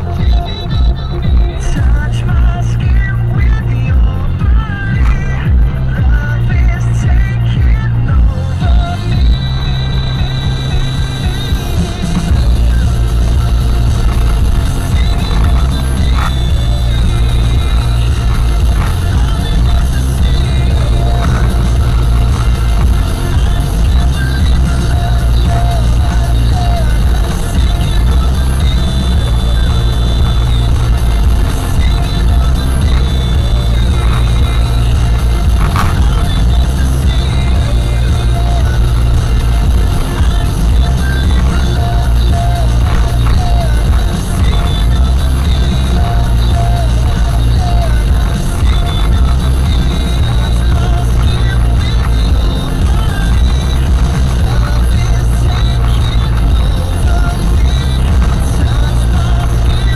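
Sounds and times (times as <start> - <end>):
motorway road noise: 0.0 - 59.9
song on car radio: 0.0 - 59.9.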